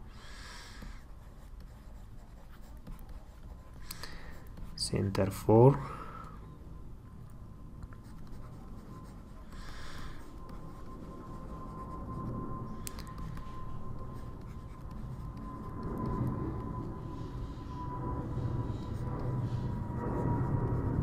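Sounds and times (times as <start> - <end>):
low hum: 0.0 - 21.0
pen scratching on paper: 0.6 - 4.9, 8.0 - 12.3, 12.9 - 16.2.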